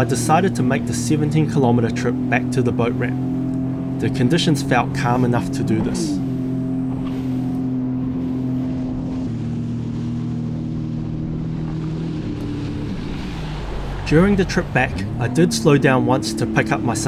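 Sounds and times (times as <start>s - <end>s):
jet ski engine and spray: 0.0s - 17.0s.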